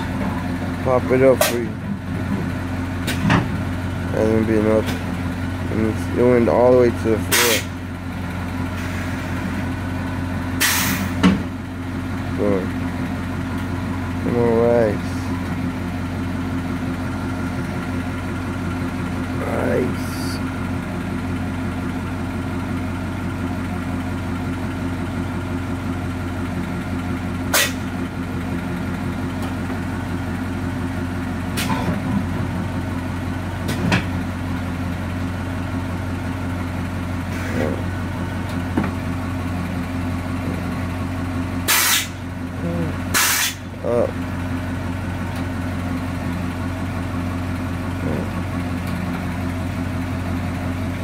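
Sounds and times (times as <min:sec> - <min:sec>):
air hissing bursts: 0:10.6 - 0:11.2, 0:41.7 - 0:42.2, 0:43.1 - 0:43.6.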